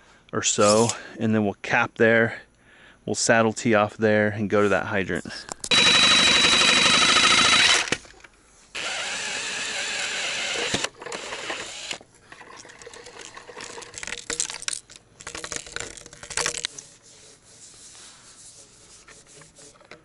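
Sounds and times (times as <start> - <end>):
reciprocating saw cutting pipe: 5.7 - 8.0, 8.7 - 12.0
scraping and clicks on pipe: 12.3 - 17.4, 18.5 - 20.0.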